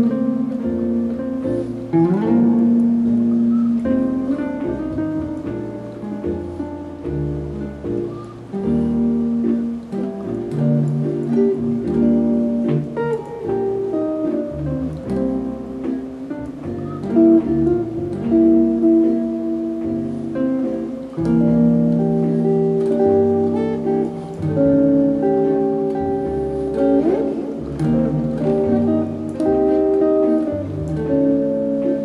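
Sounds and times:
electric guitar chord-melody: 0:08.5 - 0:32.0.

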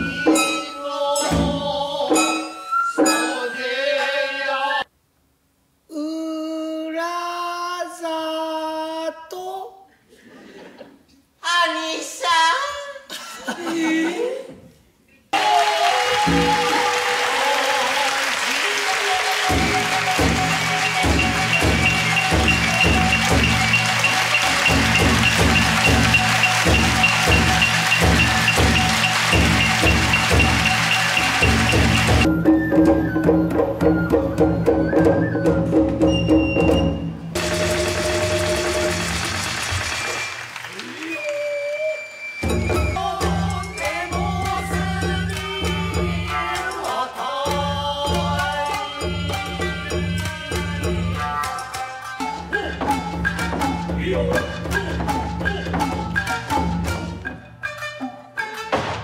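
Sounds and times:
audience applauding: 0:15.4 - 0:32.3, 0:37.4 - 0:42.5
music ensemble holding a note: 0:19.2 - 0:32.4.

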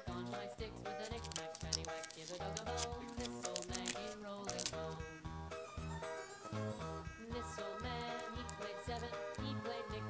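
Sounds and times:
plastic bag crinkling: 0:01.0 - 0:04.8.

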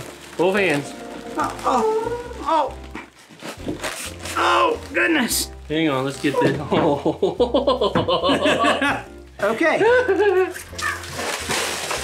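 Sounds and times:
styrofoam and plastic bag rustling: 0:00.0 - 0:07.2, 0:09.1 - 0:12.0.

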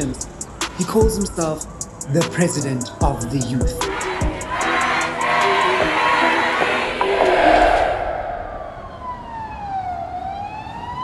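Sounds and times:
siren wailing: 0:05.4 - 0:11.0.

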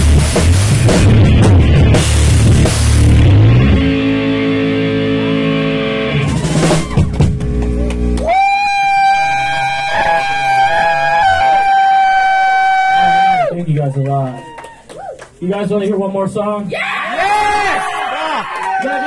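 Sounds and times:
guitar feedback tone: 0:01.0 - 0:13.6
electric guitars ringing chord: 0:01.2 - 0:08.2.

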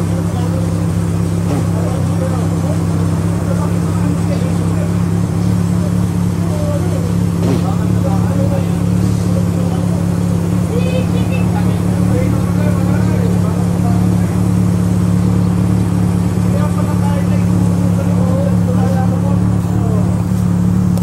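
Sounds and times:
faint voices talking: 0:00.0 - 0:21.0
loud steady low hum: 0:00.0 - 0:21.0.

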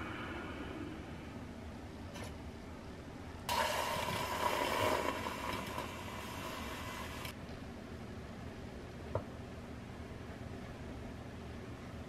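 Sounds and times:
milk frother whirring: 0:03.5 - 0:07.3
milk frothing hiss: 0:03.5 - 0:07.3.

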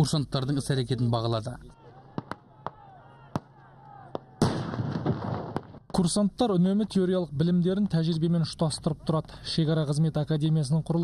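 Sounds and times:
gunshots: 0:02.2 - 0:06.1.

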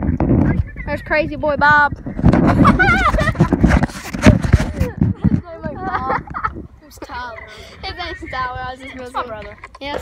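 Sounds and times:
low microphone rumble: 0:00.0 - 0:10.0
person laughing: 0:02.4 - 0:03.6
voices: 0:04.5 - 0:10.0.

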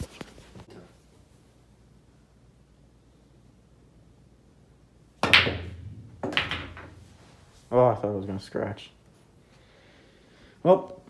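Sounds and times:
cue striking cue ball: 0:05.2 - 0:07.4
pool balls clacking: 0:05.2 - 0:07.7.

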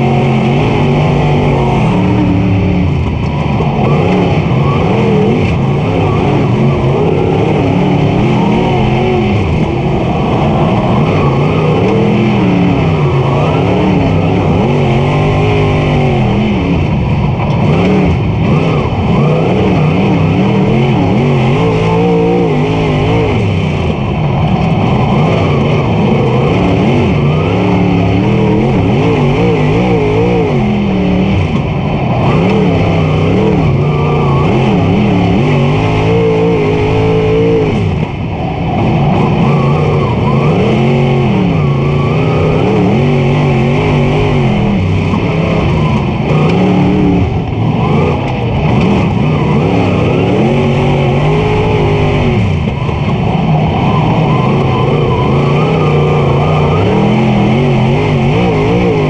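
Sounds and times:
race car engine revving: 0:00.0 - 0:59.0.

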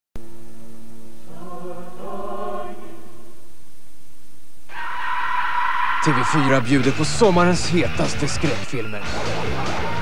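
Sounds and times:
choir chanting over drone: 0:01.2 - 0:03.4.

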